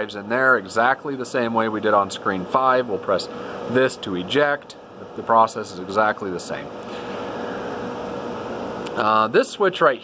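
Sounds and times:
cooling fans whirring: 0:00.0 - 0:10.0.

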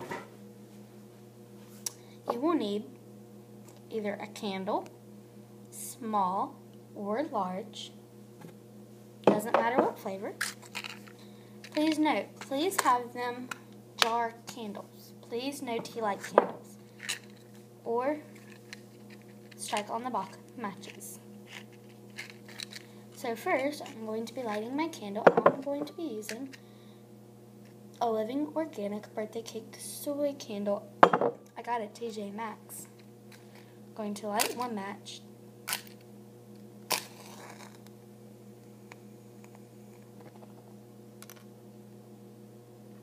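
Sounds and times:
steady low hum: 0:00.0 - 0:43.0
matchbox clicks and rustles: 0:20.9 - 0:22.9, 0:36.9 - 0:37.9.

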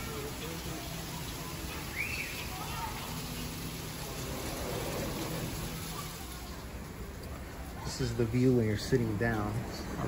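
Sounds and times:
rain pouring on leaves and pavement: 0:00.0 - 0:10.0.

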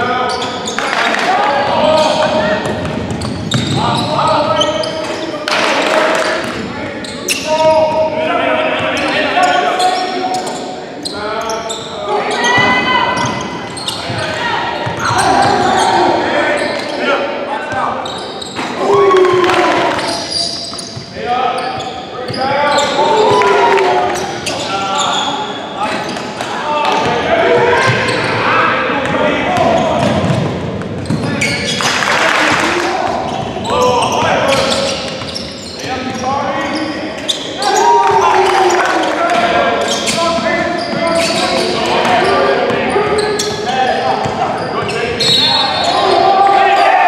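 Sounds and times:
players and coaches calling out: 0:00.0 - 0:47.0.

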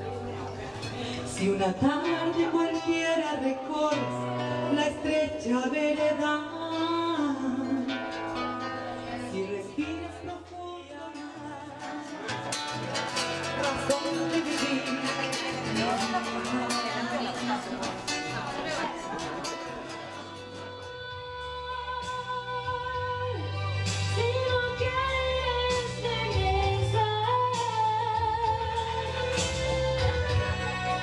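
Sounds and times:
woman singing: 0:01.2 - 0:12.6, 0:13.3 - 0:31.0
acoustic guitar strummed quickly: 0:11.8 - 0:20.5.

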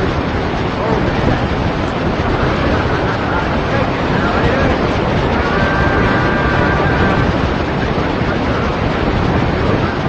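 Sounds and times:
radio recording hiss and rumble: 0:00.0 - 0:10.0.

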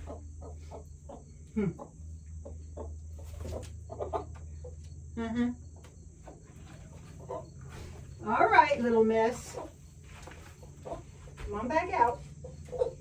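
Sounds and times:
insect chirring: 0:00.0 - 0:10.0
hen clucking: 0:00.0 - 0:13.0.

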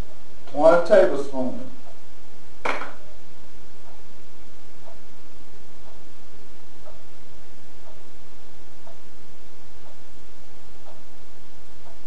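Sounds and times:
person's voice: 0:00.5 - 0:01.8.

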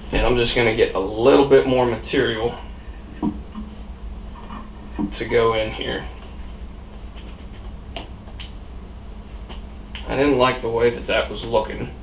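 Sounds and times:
low room hum: 0:00.0 - 0:12.0.

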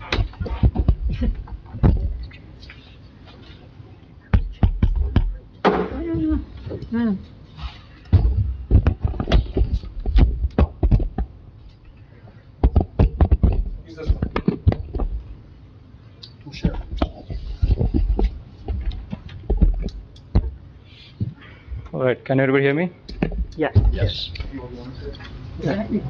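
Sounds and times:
microphone handling knocks and clicks: 0:00.0 - 0:02.4, 0:04.3 - 0:06.9, 0:08.1 - 0:11.4, 0:12.6 - 0:15.3, 0:16.6 - 0:20.6, 0:23.1 - 0:24.5.

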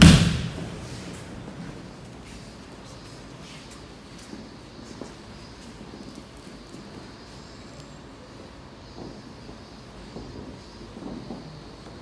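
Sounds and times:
room full of people: 0:00.0 - 0:12.0.

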